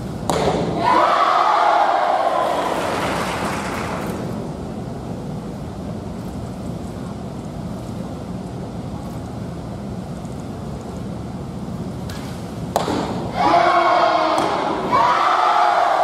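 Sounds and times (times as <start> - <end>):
arrow striking target: 0.2 - 0.8
crowd cheering: 0.8 - 4.3, 13.4 - 16.0.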